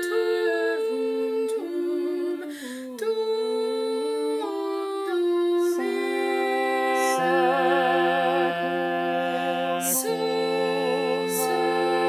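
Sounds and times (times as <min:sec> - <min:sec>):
unaccompanied four-part singing: 0:00.0 - 0:02.5, 0:03.1 - 0:12.0
singer breath: 0:02.5 - 0:03.0.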